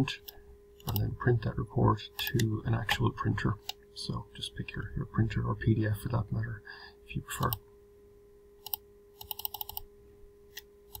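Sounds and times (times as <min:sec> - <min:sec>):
faint electrical hum: 0:00.0 - 0:11.0
computer mouse or keyboard clicks: 0:08.6 - 0:09.8.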